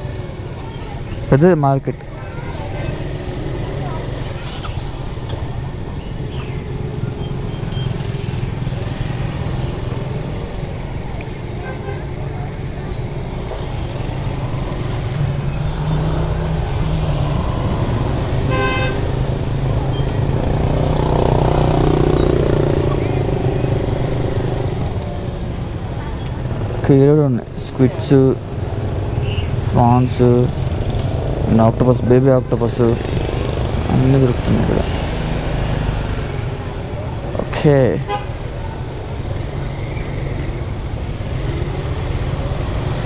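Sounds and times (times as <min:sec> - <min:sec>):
vehicle horn toot: 0:18.5 - 0:19.1, 0:38.0 - 0:38.4.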